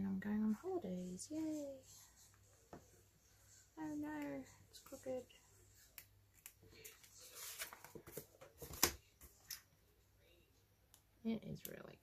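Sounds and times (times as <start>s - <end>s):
paper rustling: 6.4s - 9.5s.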